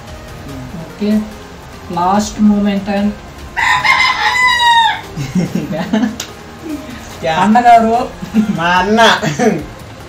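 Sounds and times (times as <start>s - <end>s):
rooster crowing: 3.5s - 5.2s.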